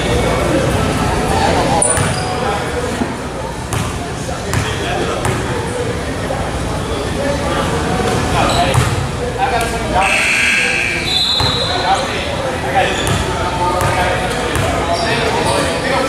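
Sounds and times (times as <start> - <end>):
echoing voices: 0.0 - 16.0.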